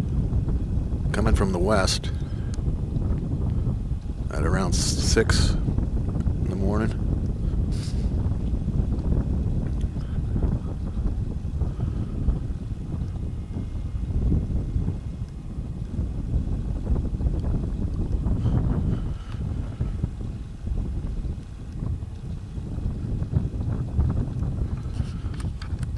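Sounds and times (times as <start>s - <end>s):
wind buffeting microphone: 0.0s - 25.9s.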